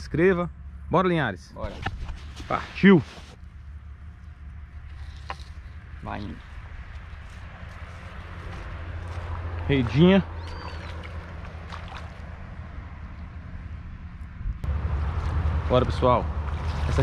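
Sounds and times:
steady low rumble: 0.0s - 17.0s
faint water splashing: 4.9s - 13.2s, 15.0s - 17.0s.

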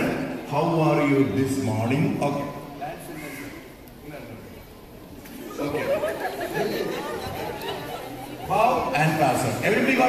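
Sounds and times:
group of people talking: 0.0s - 10.0s.

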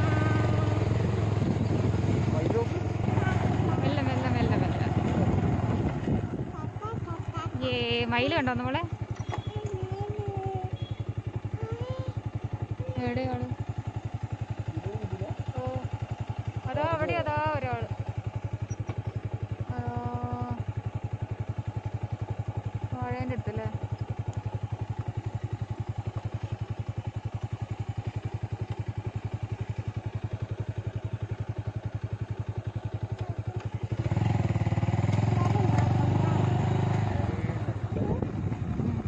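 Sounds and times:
road and wind noise: 0.0s - 19.6s, 32.2s - 39.0s
motorcycle engine running: 0.0s - 39.0s.

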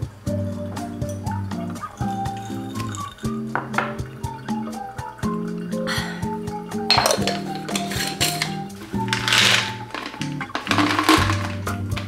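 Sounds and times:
background music with beat: 0.0s - 12.0s
glass clinking: 1.0s - 4.9s, 6.8s - 12.0s.

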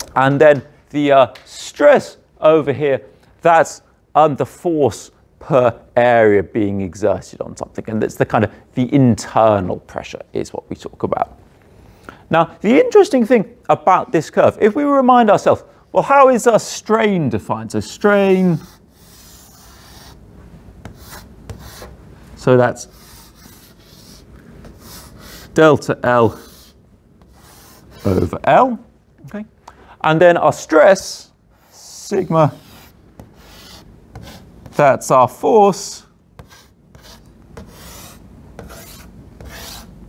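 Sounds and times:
chalk scratching on blackboard: 18.3s - 20.2s, 20.8s - 22.0s, 22.8s - 25.6s, 26.3s - 28.4s, 31.6s - 34.8s, 36.4s - 39.9s.

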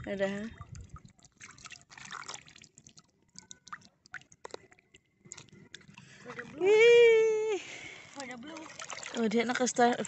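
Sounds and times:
water drips and small splashes: 0.0s - 10.0s.

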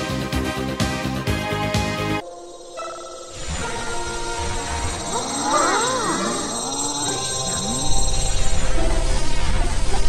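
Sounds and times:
music backing track: 0.0s - 2.3s.

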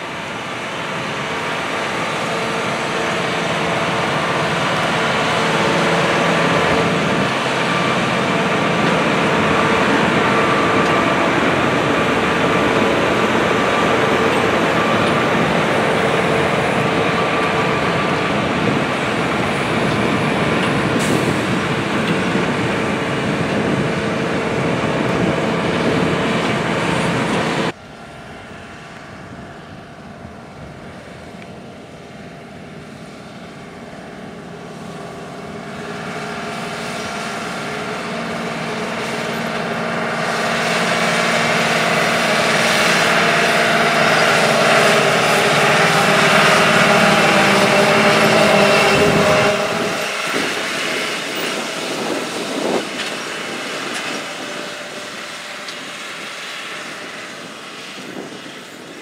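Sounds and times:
diesel engine running: 0.0s - 59.0s.

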